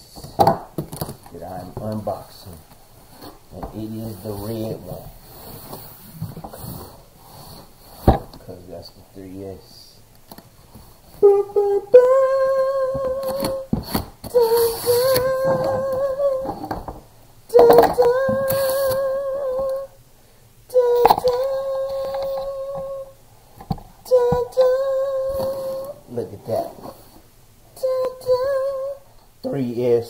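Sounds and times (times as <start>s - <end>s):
man singing wordless notes: 11.2s - 13.7s, 14.3s - 16.8s, 17.5s - 20.0s, 20.7s - 23.1s, 24.1s - 26.8s.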